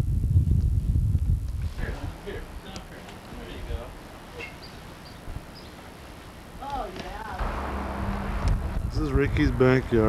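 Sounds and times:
rush of noise: 7.3 - 10.0.

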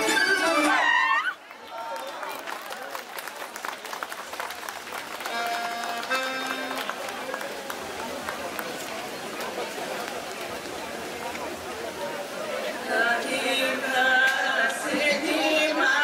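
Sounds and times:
folk fiddle dance music: 0.0 - 1.0, 5.2 - 8.9
crowd chatter: 0.0 - 16.0.

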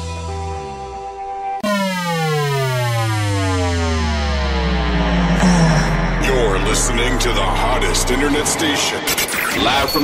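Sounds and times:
held synthesizer tones: 1.6 - 8.5
downward sweeping synth tone: 1.6 - 10.0.

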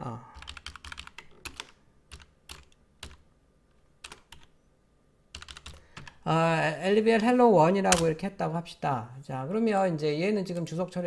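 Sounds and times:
typing on computer keyboard: 0.4 - 3.2, 4.0 - 4.5, 5.3 - 6.2.

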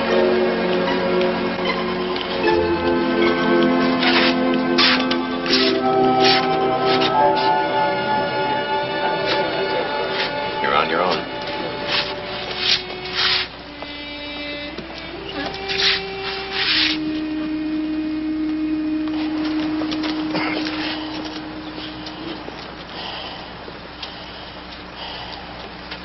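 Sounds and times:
electronic tones stepping pitch: 0.0 - 22.8
faint room murmur: 0.0 - 26.0
loud bursts of hiss: 12.0 - 13.6, 15.6 - 17.2.

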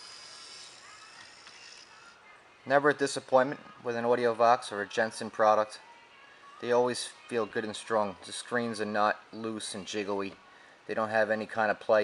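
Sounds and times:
screen motor whirring: 0.0 - 2.2.

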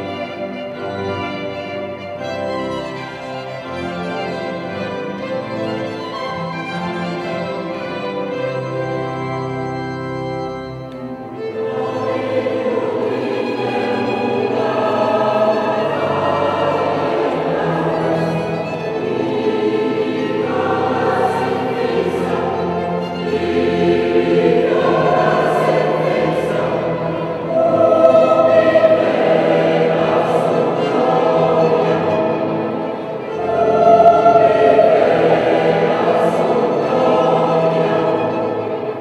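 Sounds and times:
string accompaniment: 0.0 - 39.0
mixed choir singing: 11.3 - 39.0.

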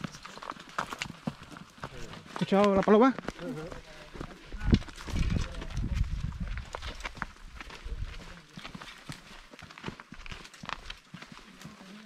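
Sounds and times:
footsteps on dirt and stone: 0.0 - 12.0.

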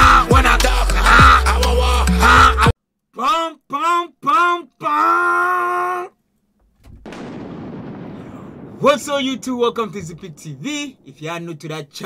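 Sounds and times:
explosion rumble and blast: 6.9 - 11.2.

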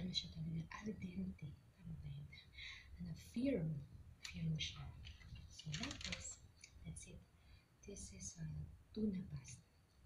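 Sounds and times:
woman speaking softly: 0.0 - 9.7.

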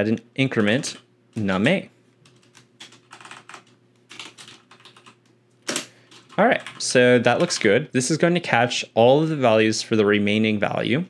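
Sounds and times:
computer keyboard typing: 2.2 - 7.7.

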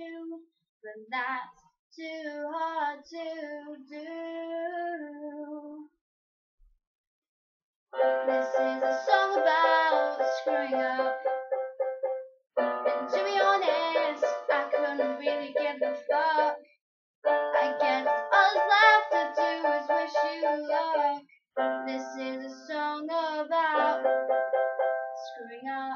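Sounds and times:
electronic keyboard piano chords: 8.0 - 16.6, 17.2 - 22.4, 23.8 - 25.4.

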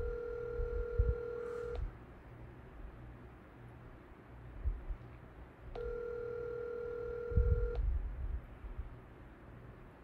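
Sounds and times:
telephone ringback tone: 0.0 - 1.8, 5.8 - 7.8.

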